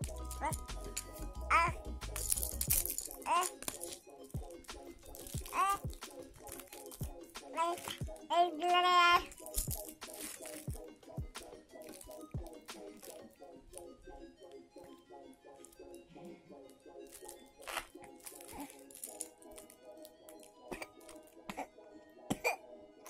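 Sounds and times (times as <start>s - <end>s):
background music: 0.0s - 23.0s
baby squealing: 1.5s - 1.8s, 3.2s - 3.7s, 5.2s - 5.9s, 7.6s - 9.3s
plastic toy clicks and crinkling: 2.2s - 4.0s, 5.1s - 8.2s, 9.2s - 10.8s, 11.8s - 13.8s, 17.1s - 21.2s.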